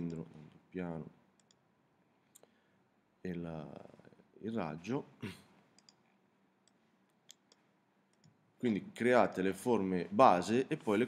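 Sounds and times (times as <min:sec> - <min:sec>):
computer mouse clicks: 0:01.4 - 0:01.6, 0:05.8 - 0:06.0.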